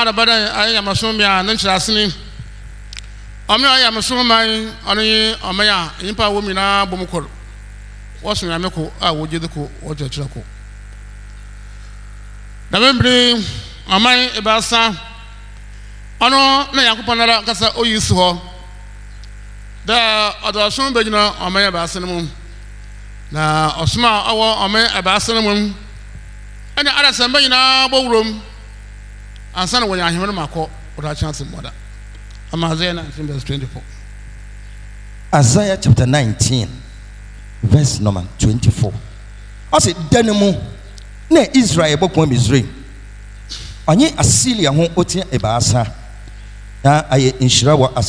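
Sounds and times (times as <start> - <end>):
man's amplified voice: 0.0 - 2.5, 3.5 - 7.4, 8.2 - 10.5, 12.7 - 15.4, 16.2 - 18.8, 19.8 - 22.5, 23.3 - 26.0, 26.8 - 28.7, 29.5 - 31.8, 32.5 - 34.0, 35.3 - 37.0, 37.6 - 42.9, 43.8 - 46.2, 46.8 - 48.0
electrical mains hum: 0.0 - 48.0
faint click: 2.9 - 3.2.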